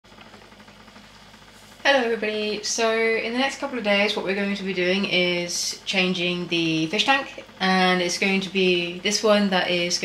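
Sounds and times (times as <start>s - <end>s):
aquarium filter humming: 0.1s - 10.0s.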